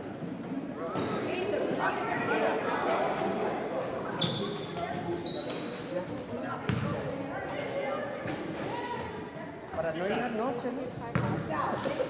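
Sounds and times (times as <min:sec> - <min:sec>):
sneaker squeaks on hardwood: 0:04.1 - 0:05.8
basketball bounce: 0:06.7 - 0:07.0, 0:11.1 - 0:11.4.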